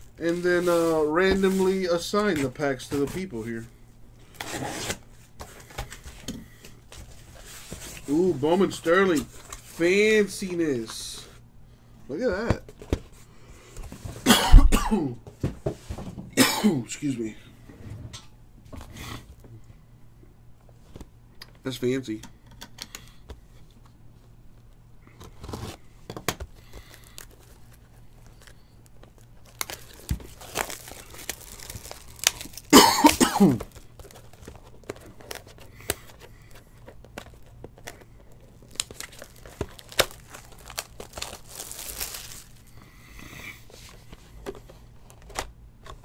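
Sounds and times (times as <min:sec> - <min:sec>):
person coughing: 0:14.2 - 0:15.2, 0:16.4 - 0:16.9, 0:32.7 - 0:33.7
plastic wrap crinkling: 0:26.6 - 0:42.8.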